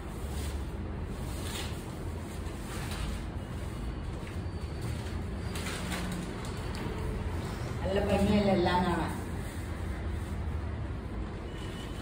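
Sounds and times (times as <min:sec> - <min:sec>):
fabric rustling: 0:00.0 - 0:11.4
person speaking: 0:07.8 - 0:09.5.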